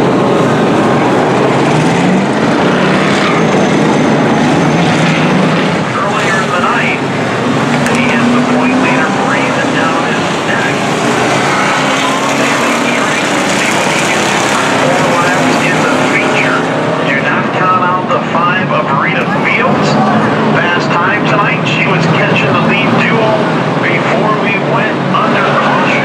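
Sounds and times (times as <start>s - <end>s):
race car engines droning: 0.0s - 26.0s
person talking: 5.8s - 7.0s, 7.8s - 10.8s, 11.9s - 26.0s.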